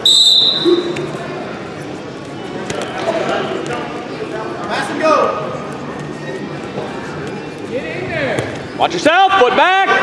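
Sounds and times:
referee's whistle blast: 0.0 - 1.0
crowd voices: 0.0 - 10.0.

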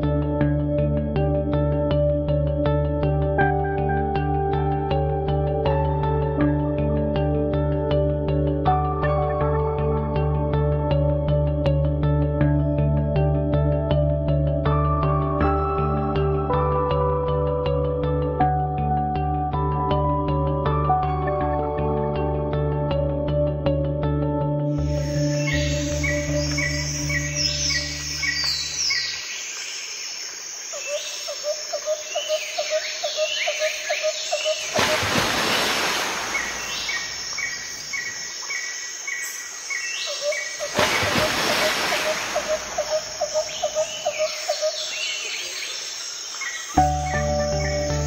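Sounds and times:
low sustained music pad: 0.0 - 29.8, 46.6 - 48.0
bird chirps: 30.7 - 34.9, 36.2 - 40.8, 41.6 - 48.0
pulsing insect-like trill: 40.1 - 45.0.

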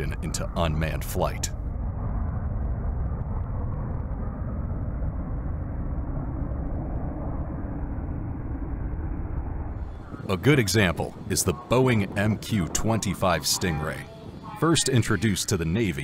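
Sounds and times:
jet aircraft rumble: 0.0 - 16.0.

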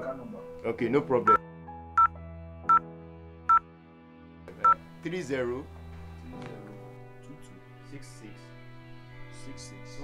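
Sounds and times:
touch-tone beeps: 2.0 - 2.8.

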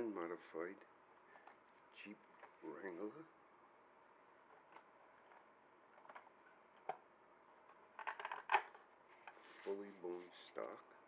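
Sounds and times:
plastic clicks and knocks: 8.0 - 8.8.

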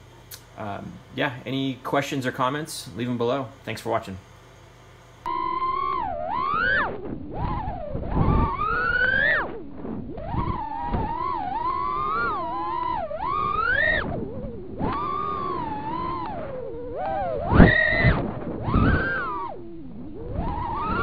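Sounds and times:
drone motors whining: 5.2 - 21.0.

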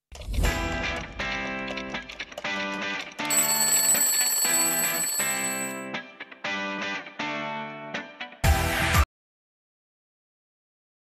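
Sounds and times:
jingle music: 2.8 - 6.2
alarm clock bell ringing: 3.2 - 5.9.

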